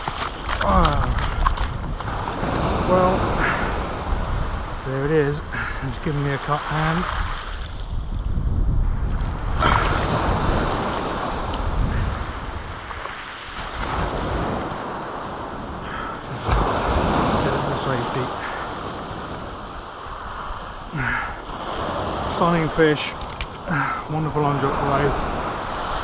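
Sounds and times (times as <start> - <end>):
wind on microphone: 0.0 - 23.9
waves washing over sand and shingle: 0.0 - 26.0.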